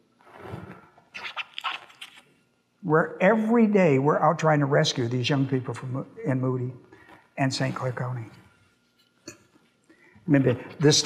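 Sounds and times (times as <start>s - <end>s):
man speaking: 2.8s - 6.8s, 7.4s - 8.4s, 10.3s - 11.0s.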